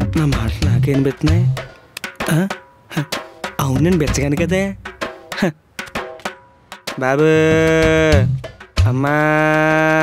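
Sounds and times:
percussion strikes: 0.0s - 10.0s
background score: 6.9s - 10.0s
man's low drawn-out voice: 7.0s - 10.0s.

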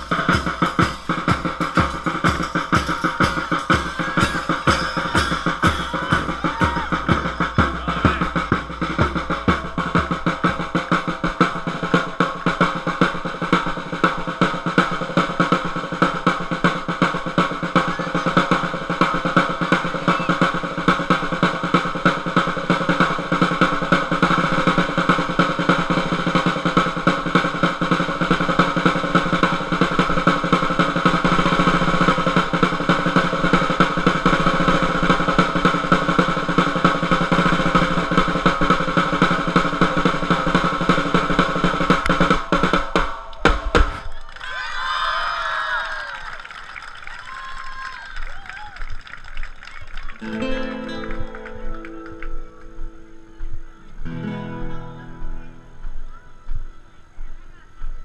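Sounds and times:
snare drum rapid strokes: 0.0s - 44.1s.

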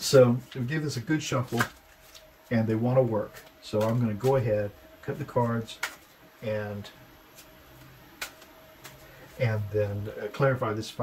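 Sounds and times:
cards clicking and tapping: 5.7s - 6.1s, 7.3s - 9.1s.

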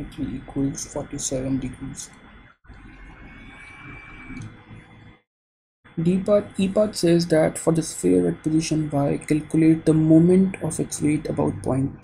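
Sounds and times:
microphone hiss: 6.0s - 12.0s.

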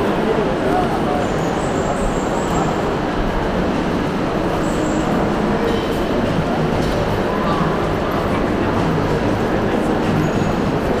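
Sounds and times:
distant crowd chatter: 0.0s - 11.0s.

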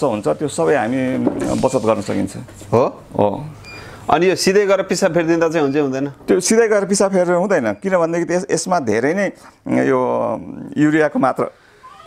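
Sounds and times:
man speaking: 0.0s - 11.6s.

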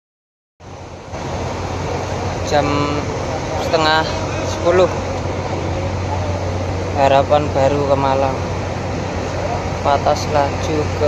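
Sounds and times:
diesel engines idling: 0.6s - 11.0s
rushing noise: 0.6s - 11.0s.

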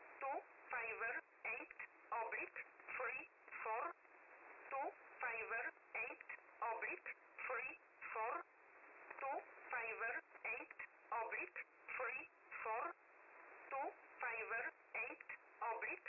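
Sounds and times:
voice reading numbers over radio: 0.2s - 3.9s, 4.7s - 8.4s, 9.2s - 13.0s, 13.7s - 16.0s.

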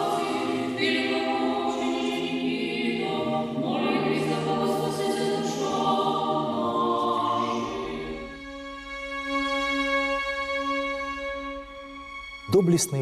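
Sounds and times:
choir singing a cappella chant: 0.0s - 10.8s.

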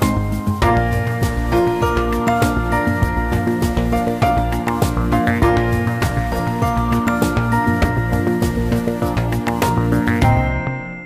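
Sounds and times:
instrumental theme music with beat: 0.0s - 11.0s.

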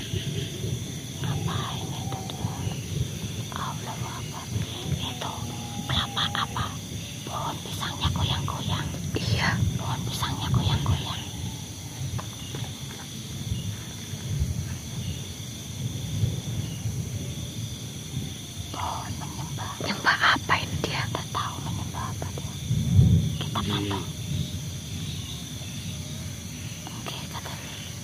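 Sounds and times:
night insects trilling: 0.0s - 28.0s.

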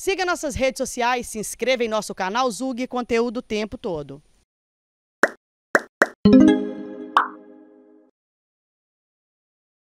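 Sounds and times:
musical chord ringing: 6.3s - 8.1s.

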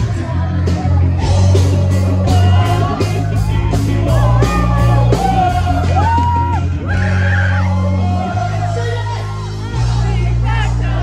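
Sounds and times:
crowd singing along and yelling: 0.0s - 11.0s
live band music: 0.0s - 11.0s.

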